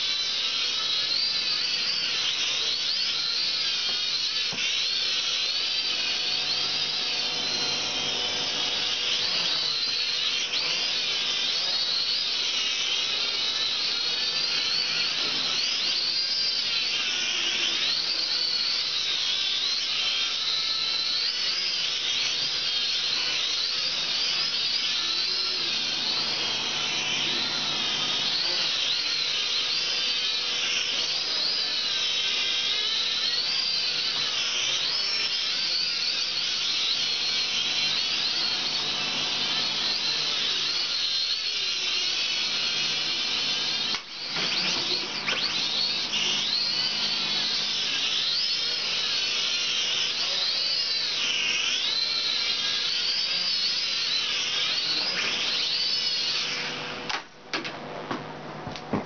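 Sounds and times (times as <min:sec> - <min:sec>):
quadcopter propellers whining: 0:00.0 - 0:57.3.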